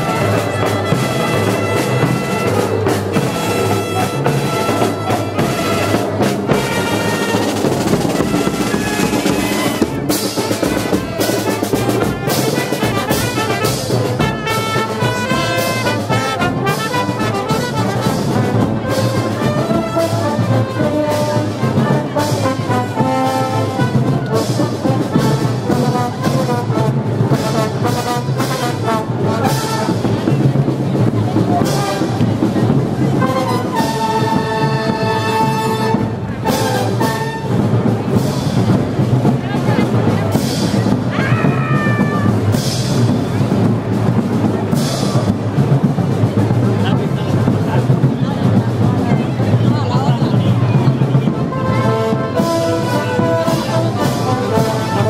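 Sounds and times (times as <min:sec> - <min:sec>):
drum and percussion strikes: 0:00.0 - 0:55.0
marching brass band playing: 0:00.0 - 0:55.0.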